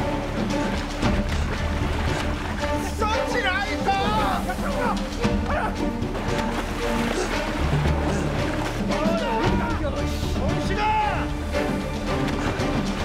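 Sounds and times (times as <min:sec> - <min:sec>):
film score held tones: 0:00.0 - 0:13.0
storm at sea: 0:00.0 - 0:13.0
men shouting: 0:02.7 - 0:06.0, 0:07.2 - 0:11.4.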